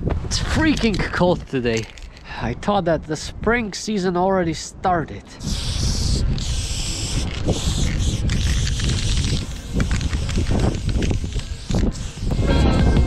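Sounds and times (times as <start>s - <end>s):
steady low rumble: 0.0s - 13.0s
spray-paint can hissing: 5.4s - 13.0s.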